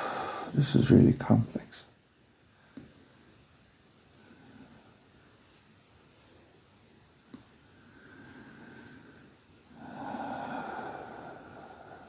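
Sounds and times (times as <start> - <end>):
person breathing: 0.0 - 0.6, 7.6 - 12.0.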